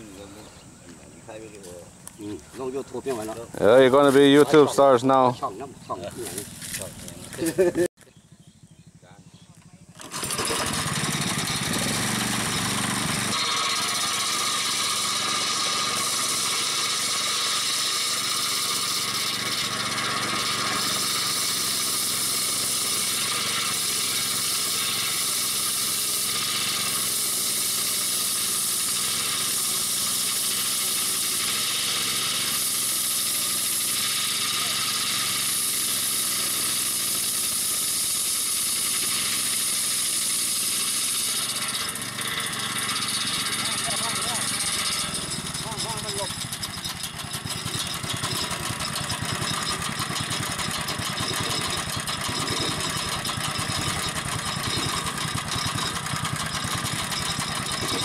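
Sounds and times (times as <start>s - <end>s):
small gasoline engine: 3.0s - 58.0s
circular saw ripping plank: 6.2s - 7.8s, 9.9s - 58.0s.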